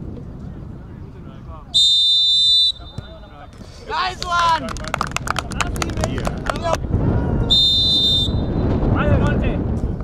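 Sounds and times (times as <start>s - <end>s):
wind rumble on microphone: 0.0s - 1.8s, 2.9s - 10.0s
referee's whistle blast: 1.8s - 3.2s, 7.5s - 8.6s.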